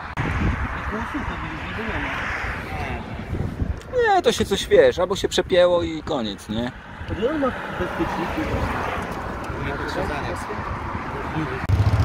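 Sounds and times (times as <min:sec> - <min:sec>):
people talking: 0:00.8 - 0:03.1, 0:03.9 - 0:08.7, 0:09.6 - 0:11.7.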